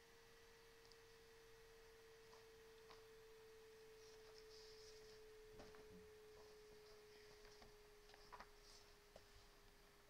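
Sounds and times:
faint steady tone: 0.0 - 10.0.

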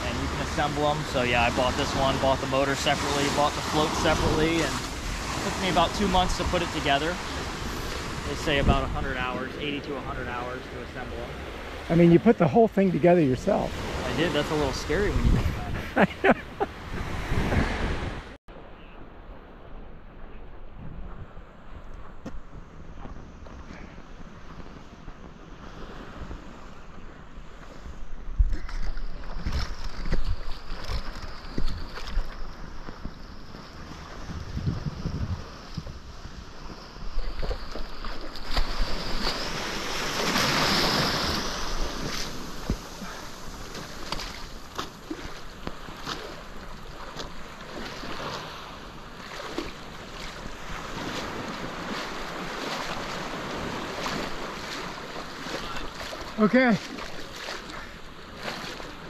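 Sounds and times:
small waves washing on shore: 0.0 - 18.7, 20.4 - 59.0
wind buffeting microphone: 3.0 - 12.0, 13.5 - 18.4, 19.0 - 45.9.

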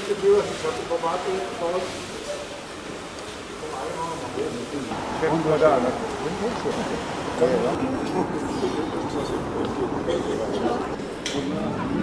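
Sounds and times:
city street hum: 0.0 - 12.0
people talking indistinctly: 3.5 - 12.0.

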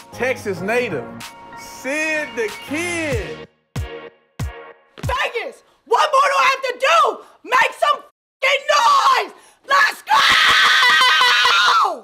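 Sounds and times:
woman screaming: 8.4 - 12.0.

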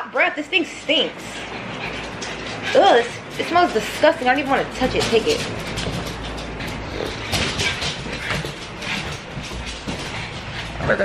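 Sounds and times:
dogs play-fighting noises: 0.3 - 11.0.

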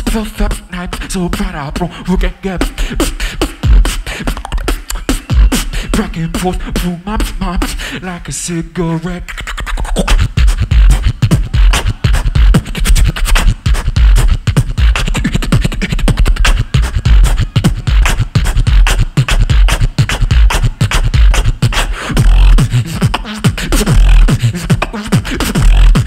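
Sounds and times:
person beatboxing: 0.0 - 26.0.

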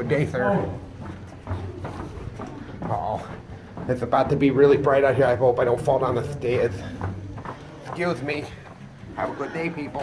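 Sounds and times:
footsteps on wet concrete: 0.0 - 10.0
heavy breathing: 2.0 - 3.9.

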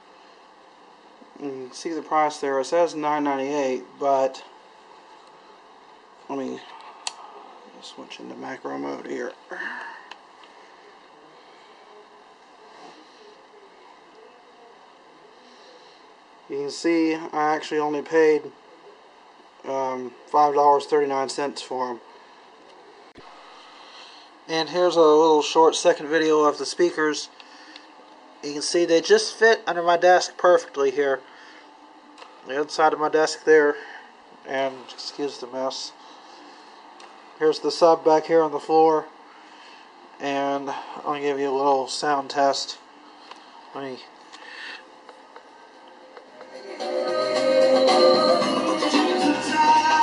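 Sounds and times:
room tone hiss: 0.0 - 50.0.

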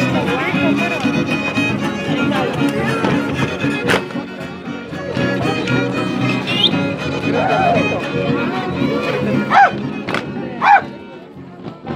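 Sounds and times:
violin dance music: 0.0 - 11.9.

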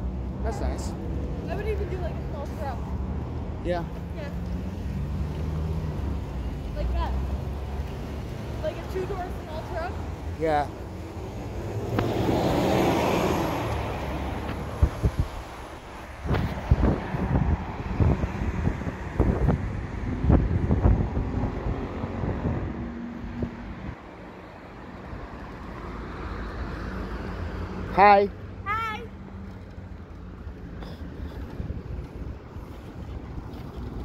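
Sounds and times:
bus engine and tyre noise: 0.0 - 34.0
road traffic noise: 0.0 - 34.0.

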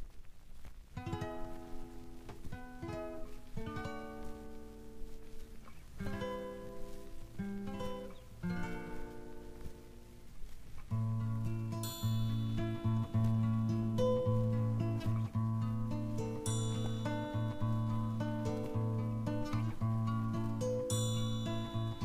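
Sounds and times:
guitar playing slow chords: 1.0 - 22.0.

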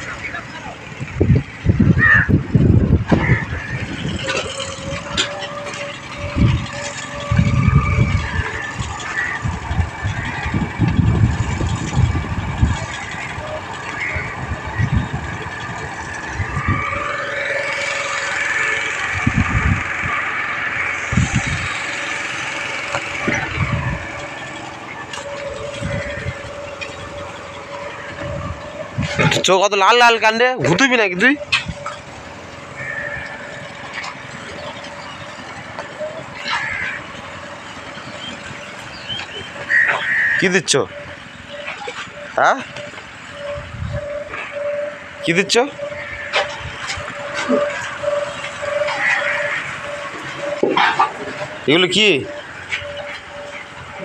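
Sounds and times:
low rumbles: 0.0 - 54.0
motorboat engine running: 0.0 - 54.0.

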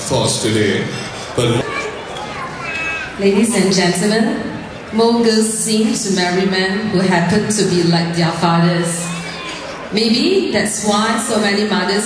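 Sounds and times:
man speaking into a microphone: 0.0 - 1.6
chatter of guests: 0.0 - 12.0
children's voices: 1.3 - 4.0, 8.4 - 12.0.

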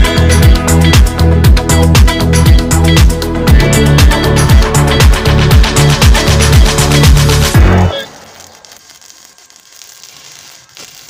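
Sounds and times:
welding arc crackling: 3.9 - 11.0.

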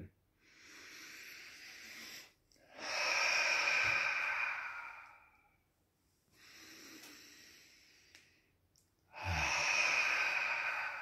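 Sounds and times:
man breathing: 0.4 - 5.7, 6.3 - 11.0.

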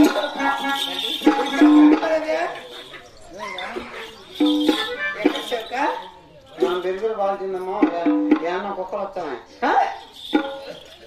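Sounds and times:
person singing: 0.0 - 2.0
instrumental accompaniment: 0.0 - 8.9, 9.9 - 11.0.

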